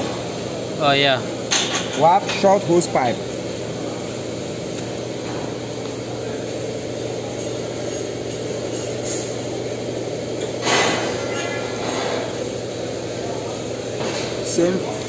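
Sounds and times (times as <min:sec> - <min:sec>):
low machinery hum: 0:00.0 - 0:15.0.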